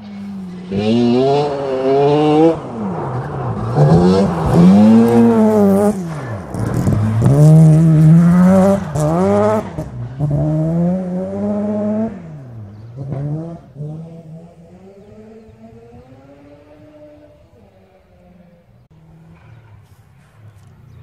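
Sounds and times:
rally car engine accelerating: 0.0 - 21.0.

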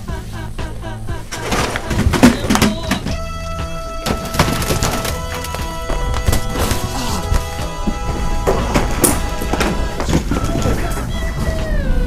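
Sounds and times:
held steady music tones: 0.0 - 12.0.

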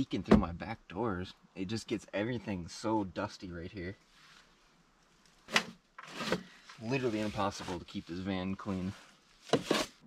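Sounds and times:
man talking: 0.0 - 4.1, 6.8 - 9.1
hand brush sweeping floor: 6.1 - 10.0.

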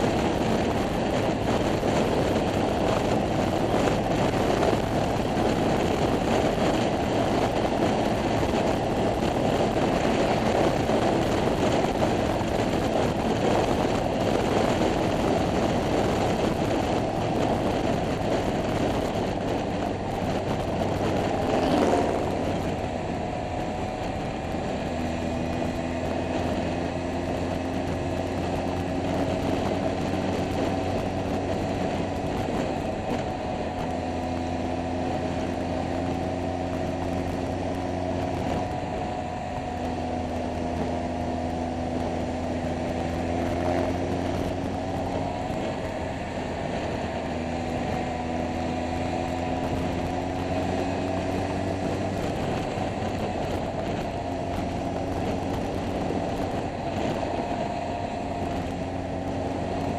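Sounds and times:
scooter engine running: 0.0 - 59.9
wind and road noise: 0.0 - 59.9.

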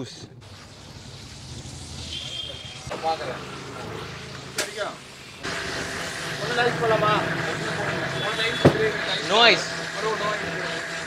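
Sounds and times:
voices: 2.2 - 11.0
electric blender motor whine: 2.9 - 11.0.

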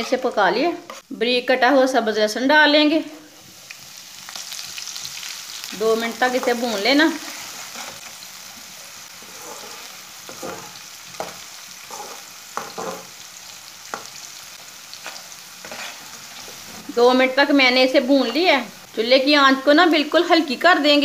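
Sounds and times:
metal spoon scraping wok: 0.0 - 1.1, 6.4 - 8.2, 9.2 - 13.1, 15.0 - 16.8
food sizzling in oil: 0.0 - 21.0.

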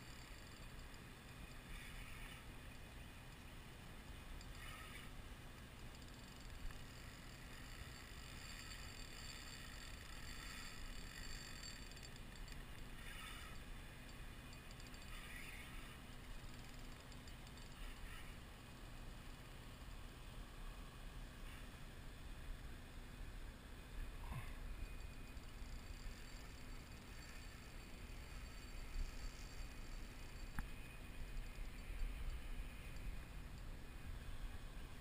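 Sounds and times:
steady low hiss: 9.8 - 35.0.

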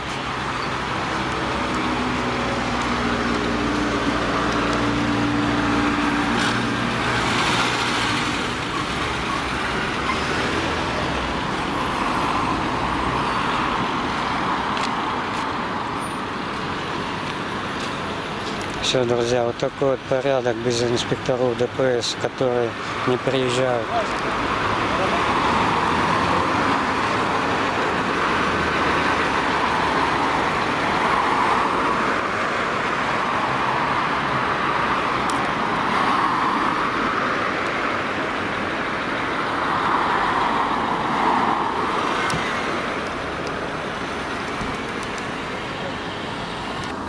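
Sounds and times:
passing cars: 0.0 - 47.0.

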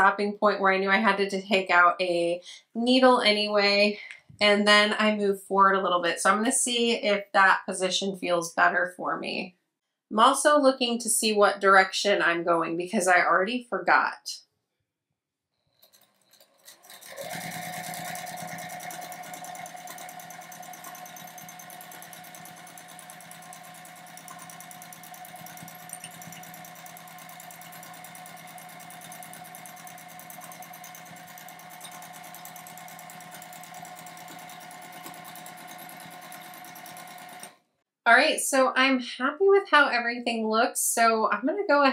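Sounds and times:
sewing machine stitching: 15.7 - 37.6.

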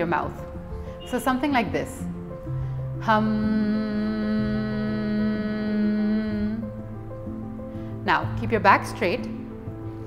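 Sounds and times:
soft background music: 0.0 - 10.0
woman humming: 3.0 - 6.7.

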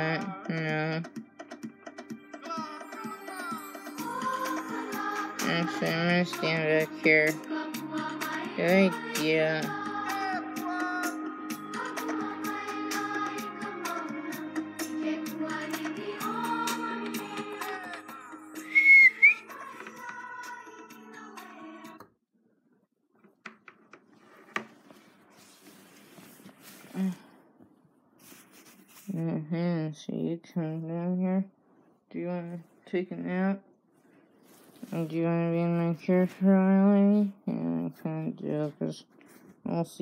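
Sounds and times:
background music: 0.0 - 22.0
loud short whistle: 18.7 - 19.4.

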